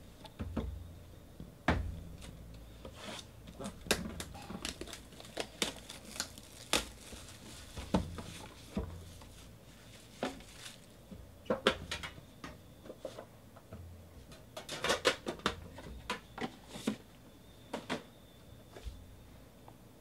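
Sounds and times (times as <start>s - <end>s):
plastic wrapping rustling: 3.0s - 11.0s.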